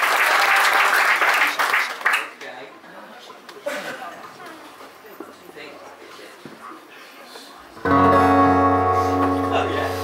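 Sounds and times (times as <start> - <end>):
acoustic guitar strummed chord: 7.9 - 10.0.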